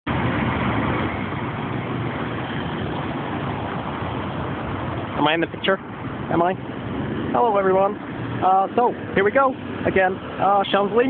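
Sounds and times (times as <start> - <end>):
dense car traffic: 0.0 - 11.0.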